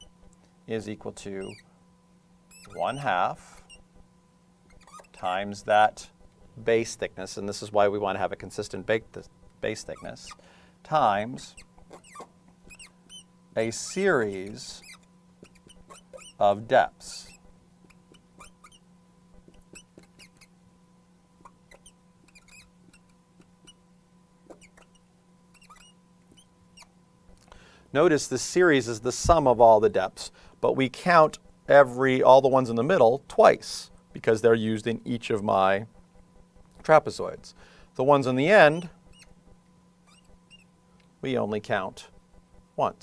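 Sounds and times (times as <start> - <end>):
marker pen squeaking on glass: 0.0 - 0.3, 1.4 - 1.7, 2.5 - 4.0, 4.6 - 5.4, 9.7 - 10.4, 11.4 - 13.3, 14.2 - 20.5, 21.4 - 23.8, 24.4 - 26.9, 38.6 - 40.7
low electrical hum: 0.0 - 43.0.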